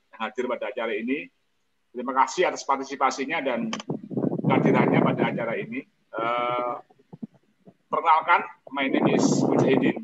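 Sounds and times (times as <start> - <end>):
man speaking: 0.0 - 3.8, 4.4 - 6.9, 7.9 - 10.0.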